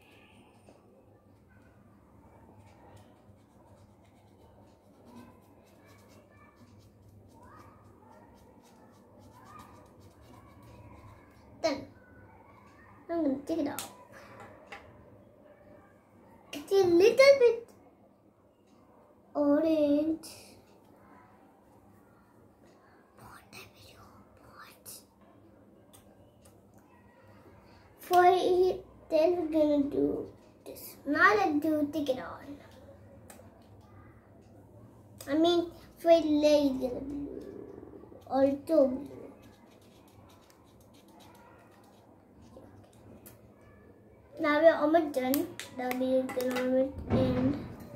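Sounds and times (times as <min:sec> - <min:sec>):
marker scratching on stamp: 0:02.6 - 0:11.4, 0:38.2 - 0:42.6
faint whispering: 0:23.0 - 0:25.1.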